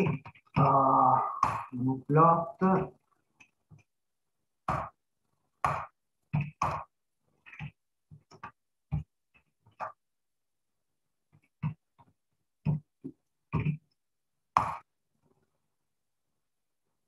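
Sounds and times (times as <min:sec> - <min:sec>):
man murmuring and grunting: 0:00.0 - 0:02.9.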